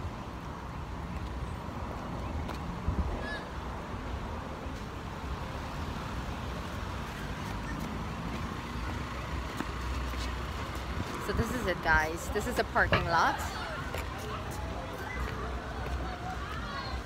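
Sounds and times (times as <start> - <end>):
wind rumbling on microphone: 0.0 - 4.4
traffic hum: 0.0 - 17.0.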